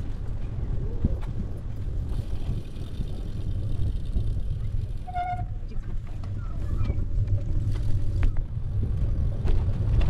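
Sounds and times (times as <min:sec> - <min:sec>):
bicycle tyres rolling on path: 0:00.0 - 0:10.0
wind rushing over microphone: 0:00.0 - 0:10.0.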